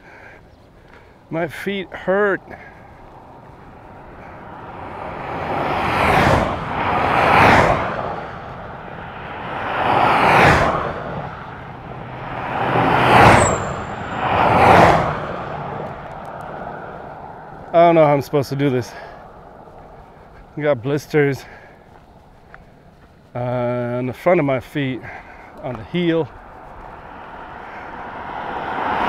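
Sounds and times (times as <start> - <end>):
vehicles driving past on asphalt: 0.0 - 29.0.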